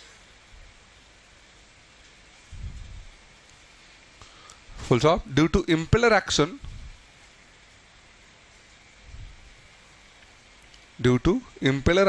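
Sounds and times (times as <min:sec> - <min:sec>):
faint room tone hiss: 0:00.0 - 0:12.0.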